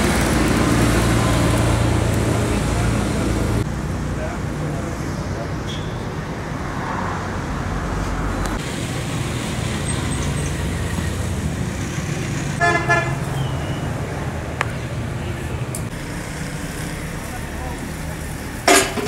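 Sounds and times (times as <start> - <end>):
road traffic noise: 0.0 - 19.0
vehicle horn blast: 12.6 - 13.8.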